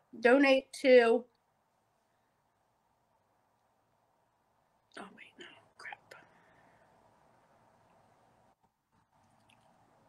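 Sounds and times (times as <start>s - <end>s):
faint room hum: 0.0s - 10.0s
woman whispering: 4.9s - 6.4s.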